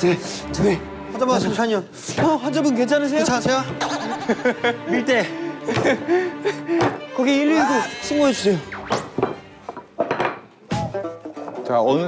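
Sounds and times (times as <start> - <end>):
background music: 0.0 - 12.0
wooden tools knocking on worktable: 9.2 - 10.9.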